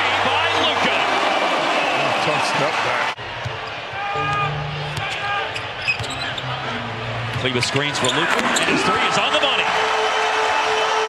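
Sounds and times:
arena crowd noise: 0.0s - 11.0s.

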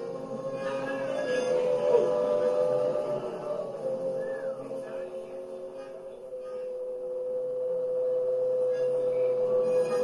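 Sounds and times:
faint steady tones: 0.0s - 10.0s.

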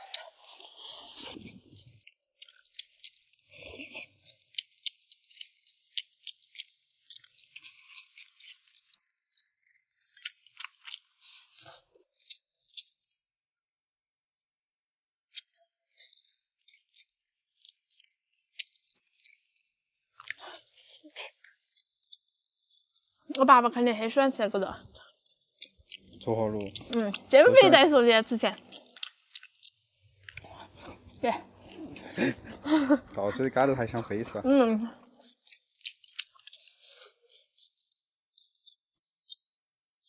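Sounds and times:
soft chewing and mouth clicks: 0.0s - 38.9s
high-pitched insect drone: 0.0s - 40.0s.

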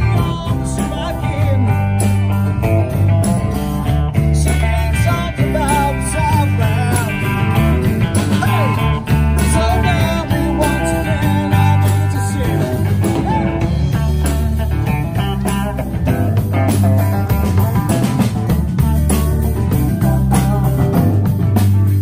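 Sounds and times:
electric guitar: 0.0s - 22.0s
live rock band playing: 0.0s - 22.0s.

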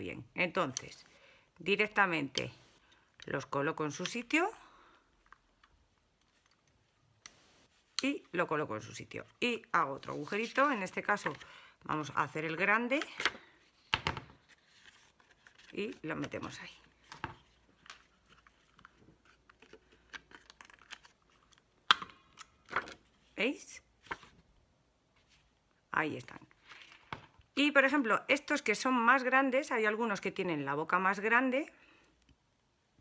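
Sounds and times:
paper handling: 13.7s - 21.6s.

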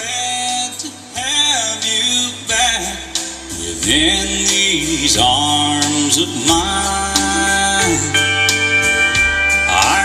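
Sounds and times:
music through car radio speaker: 0.6s - 10.0s.

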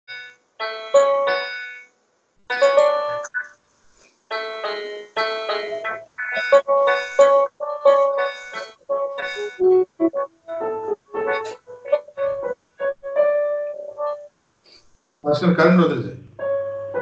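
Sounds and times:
electronic keyboard melody: 0.1s - 1.8s, 2.4s - 3.6s, 4.3s - 14.3s, 16.3s - 17.0s.

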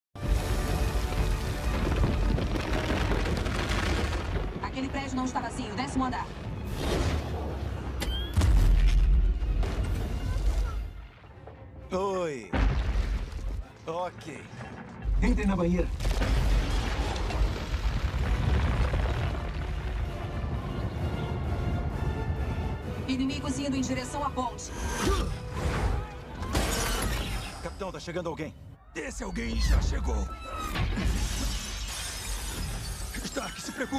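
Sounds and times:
film score music: 0.2s - 33.9s
crashing crumbling debris: 0.4s - 5.1s, 16.0s - 20.6s
explosion low rumble: 16.0s - 22.9s
orchestral score: 19.6s - 27.0s.

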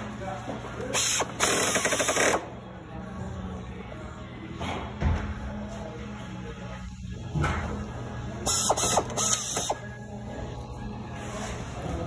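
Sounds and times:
pneumatic screwdriver: 1.0s - 2.4s, 8.5s - 9.8s.

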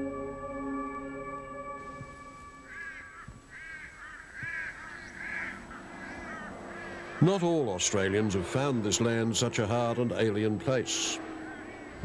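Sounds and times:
soft ambient music tones: 0.0s - 3.8s, 5.0s - 12.0s
crow cawing: 2.6s - 7.3s.

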